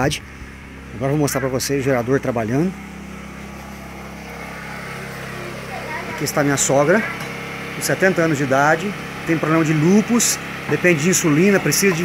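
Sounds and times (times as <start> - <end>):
generator engine droning: 0.0 - 12.0.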